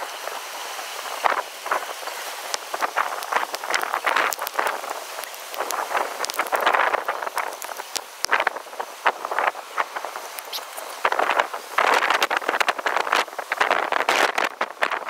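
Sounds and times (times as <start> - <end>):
wind gusting through trees: 0.0 - 15.0
sharp crackles: 1.0 - 15.0.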